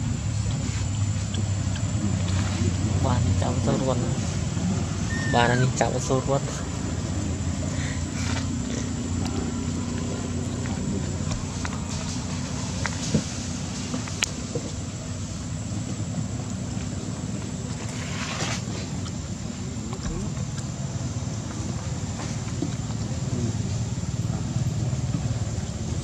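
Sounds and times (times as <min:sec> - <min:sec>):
low background rumble: 0:00.0 - 0:26.0.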